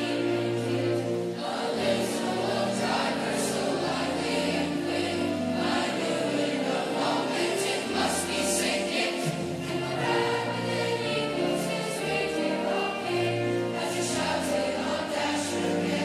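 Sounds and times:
choir singing: 0.0s - 16.0s.

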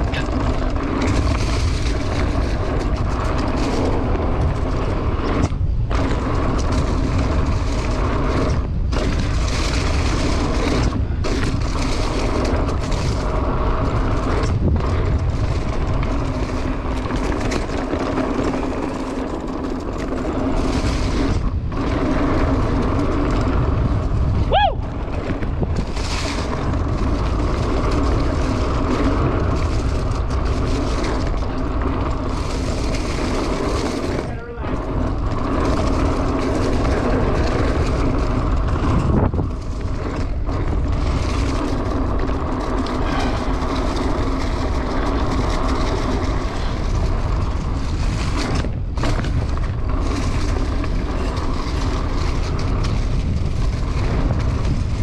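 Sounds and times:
bike tyre and drivetrain noise: 0.0s - 55.0s
wind on microphone: 0.0s - 55.0s.

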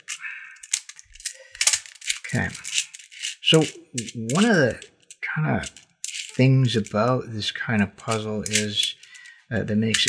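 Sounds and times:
puzzle beads clicking and rattling: 0.0s - 7.2s, 8.0s - 10.0s.

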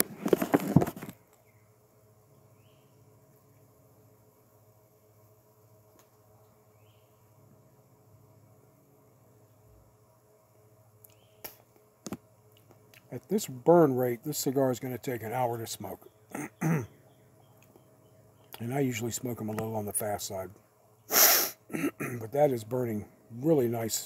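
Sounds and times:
faint steady hum: 0.0s - 24.0s
lip pops puffing a cigar: 11.4s - 13.1s.

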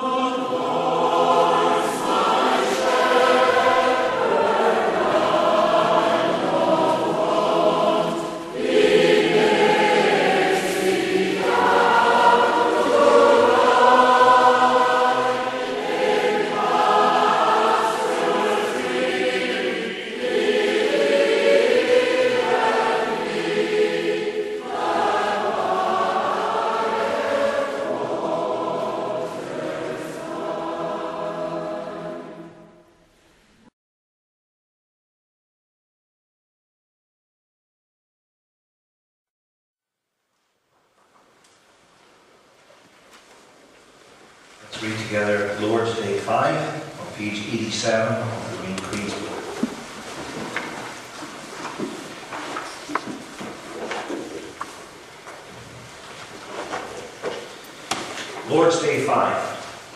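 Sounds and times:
choir singing a hymn: 0.0s - 33.2s.

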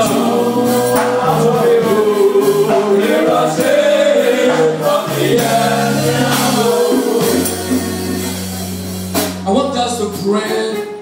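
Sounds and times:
congregation singing gospel song: 0.0s - 9.2s.

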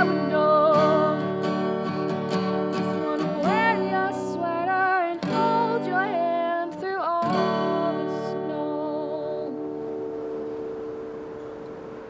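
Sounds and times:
acoustic guitar chord ringing: 0.0s - 12.0s
faint steady hiss: 0.0s - 12.0s.

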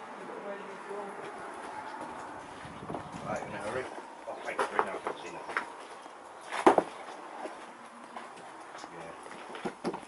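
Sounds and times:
faint footsteps on rubble: 0.7s - 10.0s.

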